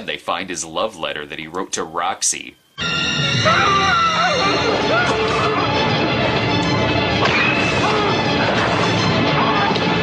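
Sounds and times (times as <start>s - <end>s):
horror film music: 2.8s - 10.0s.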